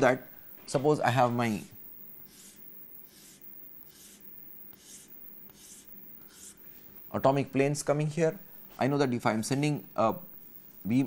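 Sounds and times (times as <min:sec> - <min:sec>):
chalk strokes on blackboard: 0:02.3 - 0:06.9.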